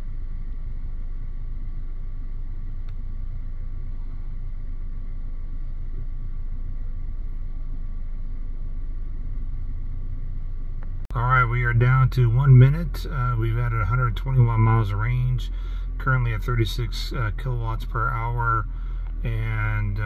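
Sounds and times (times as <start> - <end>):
faint whining tones: 0.0 - 20.0
low rumble and hum: 0.0 - 20.0.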